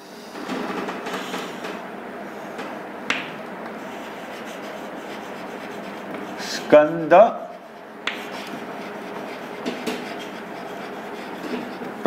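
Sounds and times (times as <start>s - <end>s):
chalk scratching on chalkboard: 3.8s - 12.0s
chalk tapping on board: 4.0s - 12.0s.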